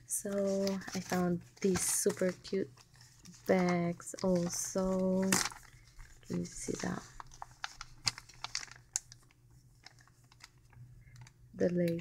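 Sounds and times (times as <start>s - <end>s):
plastic bag crinkling: 0.1s - 12.0s.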